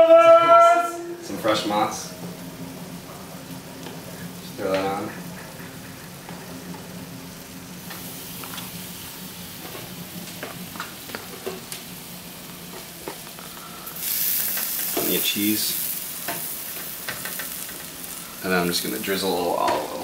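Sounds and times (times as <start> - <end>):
low hum of electric range: 0.0 - 20.0
sizzling hiss: 7.3 - 20.0.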